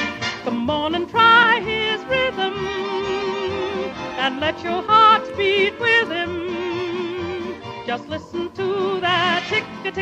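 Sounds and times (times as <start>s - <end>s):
instrumental backing: 0.0s - 10.0s
person singing with vibrato: 0.3s - 10.0s.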